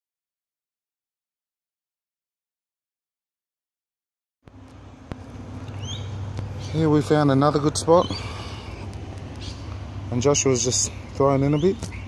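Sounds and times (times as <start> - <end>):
low outdoor rumble: 4.5 - 12.0
high rising chirp: 5.6 - 12.0.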